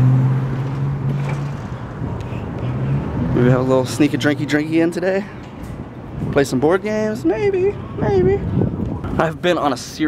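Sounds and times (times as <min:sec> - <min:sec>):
vehicle engine humming: 0:00.0 - 0:09.3
road noise: 0:00.0 - 0:10.0.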